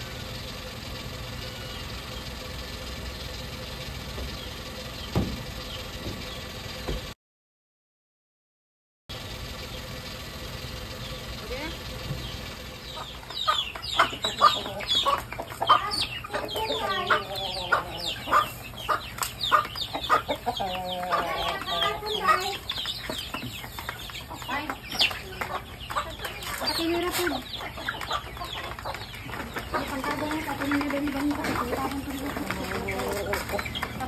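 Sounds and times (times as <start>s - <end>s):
chickens clucking and calling: 0.0s - 7.2s, 9.2s - 34.0s.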